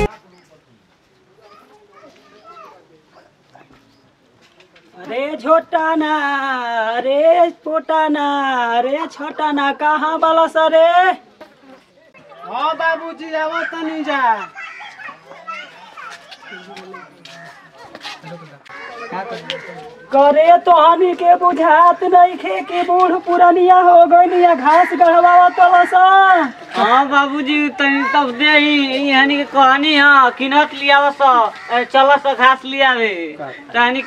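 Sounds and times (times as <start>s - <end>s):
children chattering and calling: 0.0s - 6.1s, 7.0s - 34.0s
distant voices calling: 18.6s - 34.0s.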